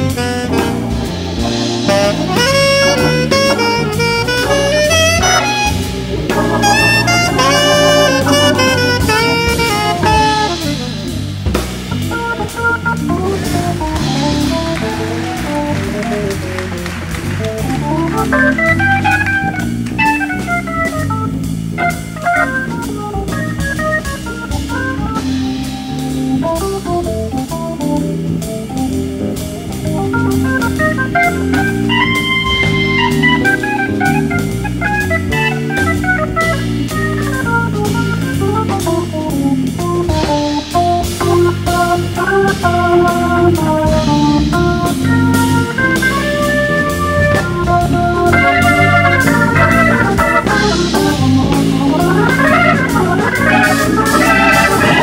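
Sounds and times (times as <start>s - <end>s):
jazz drums and bass: 0.0s - 55.0s
organ playing lead lines: 0.0s - 55.0s.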